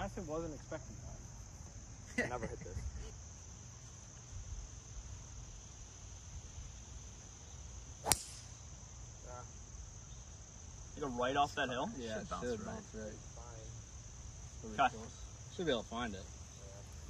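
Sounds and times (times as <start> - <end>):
insects chirring: 0.0 - 17.0
golf club striking ball: 8.0 - 8.6.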